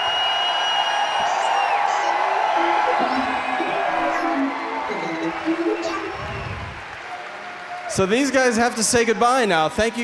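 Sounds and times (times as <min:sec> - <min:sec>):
crowd cheering and whooping: 0:00.0 - 0:08.5.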